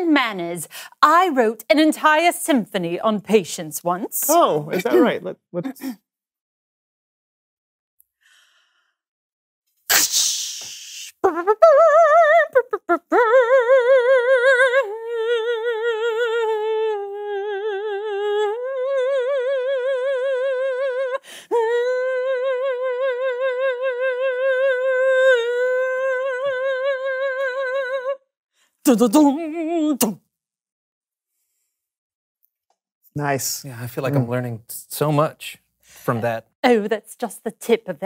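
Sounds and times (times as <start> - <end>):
sharp burst of breath: 9.9 - 11.2.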